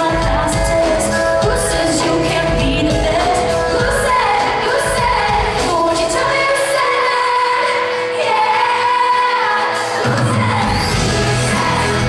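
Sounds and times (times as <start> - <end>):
live pop band: 0.0 - 12.0.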